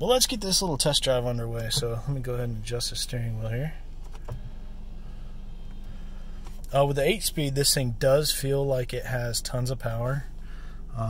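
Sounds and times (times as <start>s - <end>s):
car engine idling: 0.0s - 11.0s
steering column motor humming: 0.0s - 11.0s.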